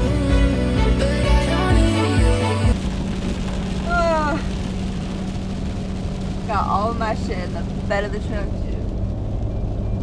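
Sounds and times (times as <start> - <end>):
background music: 0.0 - 2.8
road and engine noise in cab: 0.0 - 10.0.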